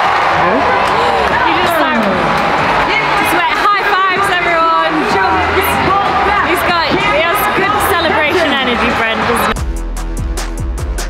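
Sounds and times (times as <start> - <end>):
people talking: 0.4 - 9.6.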